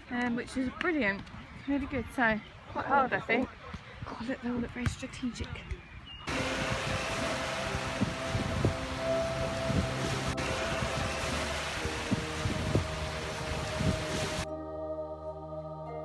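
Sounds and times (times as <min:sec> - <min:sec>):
wind buffeting microphone: 0:04.0 - 0:14.5
propeller plane droning overhead: 0:06.3 - 0:13.3
breaking surf: 0:06.3 - 0:14.5
soft music: 0:06.3 - 0:16.0.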